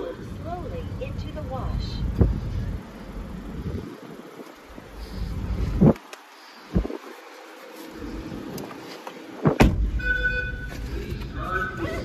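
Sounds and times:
low rumble: 0.0s - 6.0s
short steady beep: 10.0s - 10.8s.

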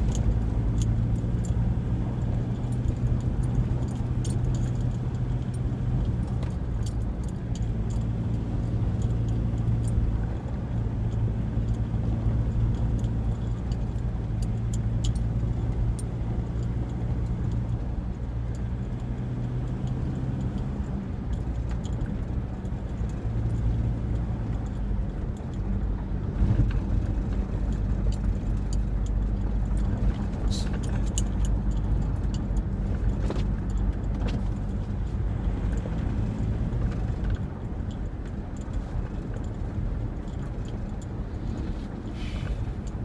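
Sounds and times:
car engine drone: 0.0s - 43.0s
light clicks and rattles: 0.0s - 43.0s
road rumble: 0.0s - 43.0s.

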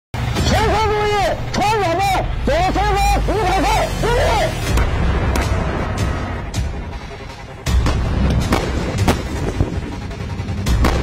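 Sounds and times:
man shouting commands: 0.4s - 4.7s.

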